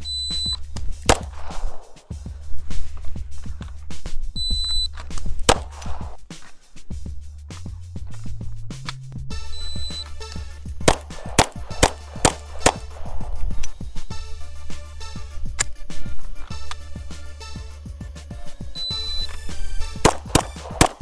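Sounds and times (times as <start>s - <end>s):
background music: 0.0s - 21.0s
pistol shots: 1.0s - 2.1s, 5.4s - 6.2s, 10.8s - 13.4s, 19.9s - 21.0s
short high beep: 4.4s - 4.9s, 9.5s - 10.1s, 18.8s - 19.4s.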